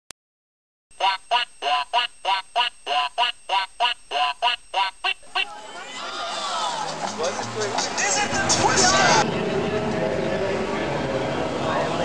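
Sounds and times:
duck quacks: 1.0s - 5.5s.

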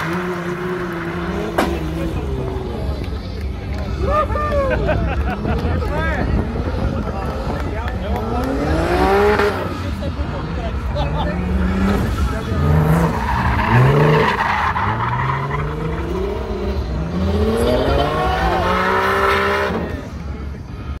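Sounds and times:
car engine revving: 0.0s - 4.2s, 5.1s - 20.4s.

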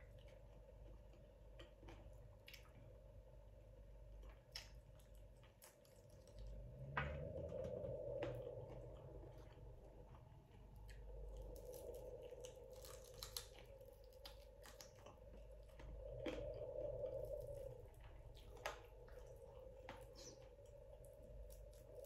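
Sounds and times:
person chewing food: 0.0s - 3.0s, 8.2s - 22.0s.

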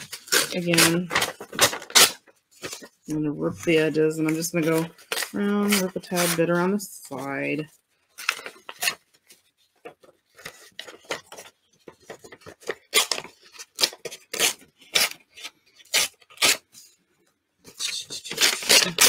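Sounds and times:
paper tearing: 0.0s - 3.0s, 4.2s - 6.7s, 12.2s - 16.9s, 17.7s - 19.0s.

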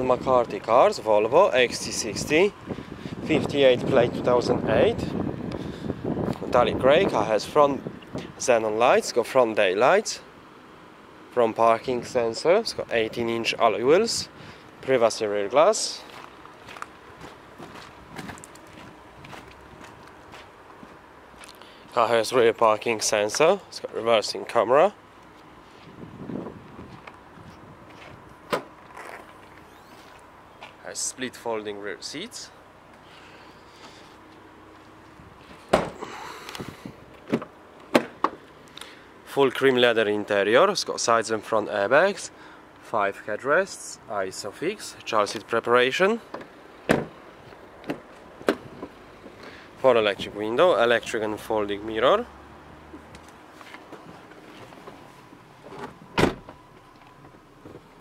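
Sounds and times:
short loud thump: 35.7s - 36.0s
tailgate latch clunk: 35.7s - 36.0s, 46.3s - 47.1s, 55.7s - 56.6s.

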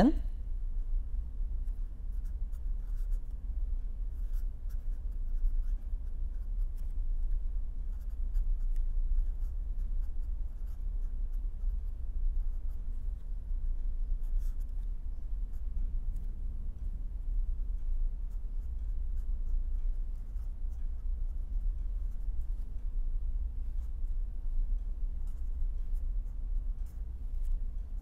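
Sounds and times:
low hum: 0.0s - 28.0s
pen scratching on paper: 2.2s - 3.2s, 4.2s - 6.9s, 7.9s - 11.7s, 14.2s - 14.8s.

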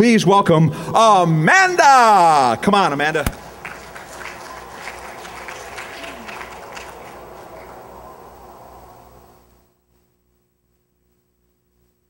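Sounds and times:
audience applauding: 1.8s - 8.8s.

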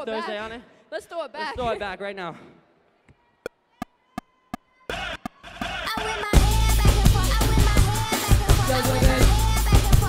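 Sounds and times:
band playing song intro: 6.4s - 10.0s.

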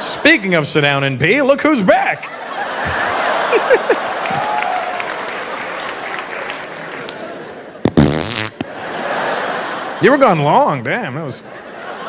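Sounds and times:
audience laughing: 2.0s - 12.0s
audience applauding: 2.9s - 7.6s.

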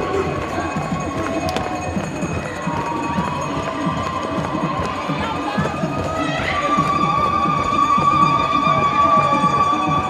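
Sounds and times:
group singing and chanting: 0.0s - 10.0s.

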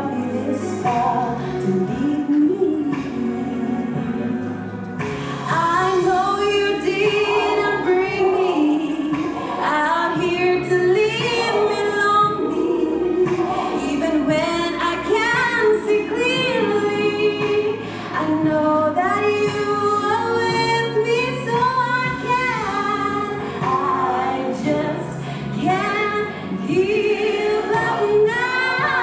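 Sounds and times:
woman singing into microphone: 0.0s - 29.0s.

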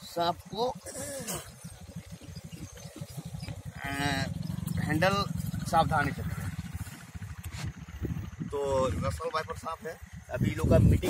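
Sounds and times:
low pulsing rumble: 1.4s - 11.0s.

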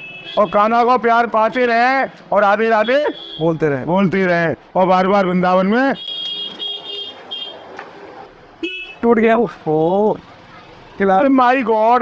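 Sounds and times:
street noise: 0.0s - 12.0s
high-pitched vehicle horn blasts: 8.6s - 9.0s.

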